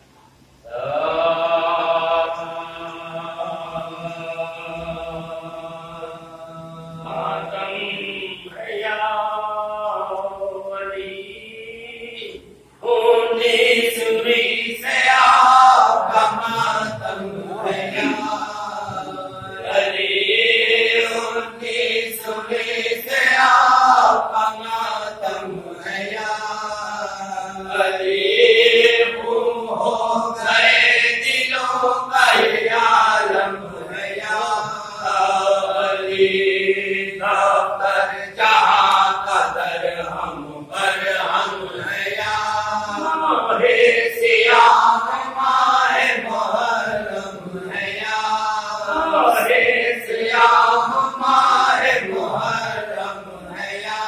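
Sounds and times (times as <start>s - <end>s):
men chanting unaccompanied: 0.6s - 54.0s.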